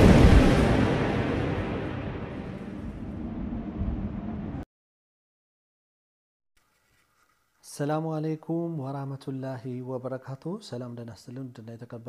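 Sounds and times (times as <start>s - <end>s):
thunder rumble: 0.0s - 4.6s.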